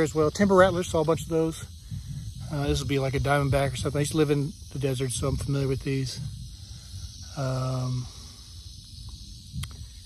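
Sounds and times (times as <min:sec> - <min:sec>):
low microphone rumble: 0:00.0 - 0:10.0
rattlesnake rattle buzzing: 0:00.0 - 0:10.0.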